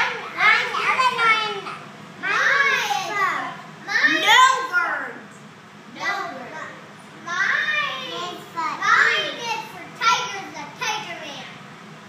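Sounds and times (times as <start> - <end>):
young child talking: 0.0 - 5.2, 5.9 - 11.6.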